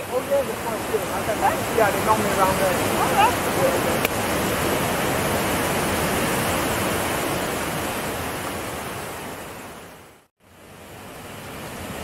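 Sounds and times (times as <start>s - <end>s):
people talking: 0.0s - 4.1s
waterfall rushing over rocks: 0.0s - 12.0s.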